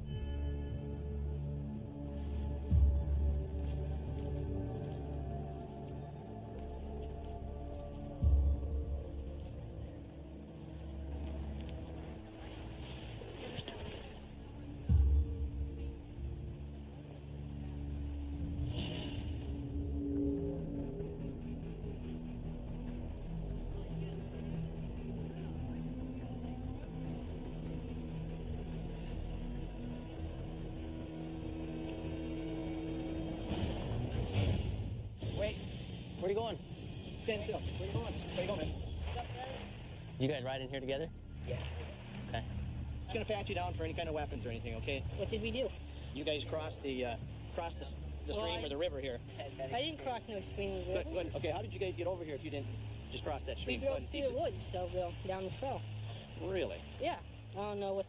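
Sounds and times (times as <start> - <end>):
tense background music: 0.0 - 58.0.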